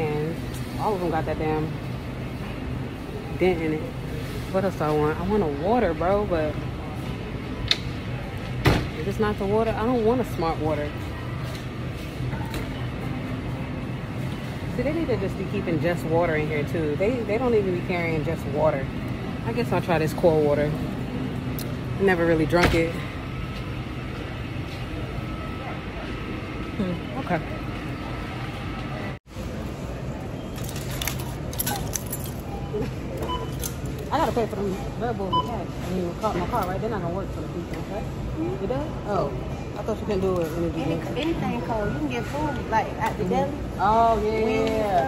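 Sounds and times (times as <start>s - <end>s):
refrigerator coolers humming: 0.0s - 45.0s.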